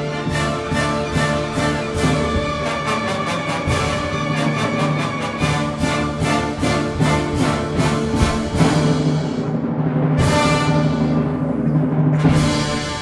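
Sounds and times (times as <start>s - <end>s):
orchestra playing chords: 0.0s - 13.0s
percussion strokes: 0.0s - 13.0s.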